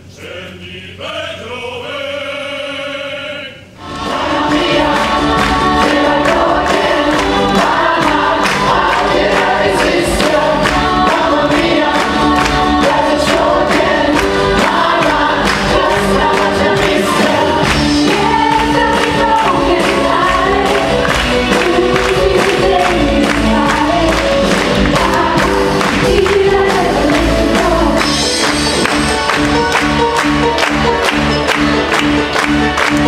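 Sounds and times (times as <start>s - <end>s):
chorus singing over a band: 0.2s - 29.2s.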